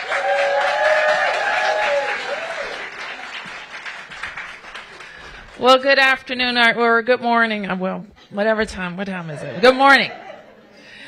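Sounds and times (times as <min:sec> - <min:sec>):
person cheering: 0:00.0 - 0:02.9
audience applauding: 0:00.0 - 0:06.2.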